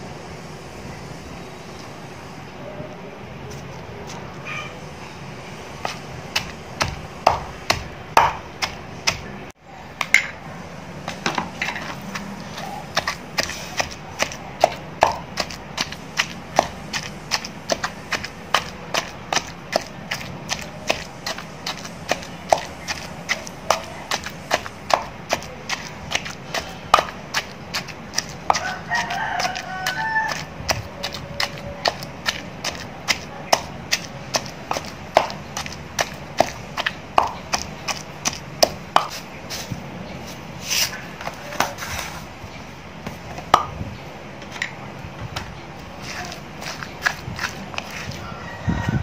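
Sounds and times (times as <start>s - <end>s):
pestle pounding in a mortar: 5.8s - 9.4s, 11.0s - 39.3s, 43.0s - 43.8s, 45.3s - 49.0s.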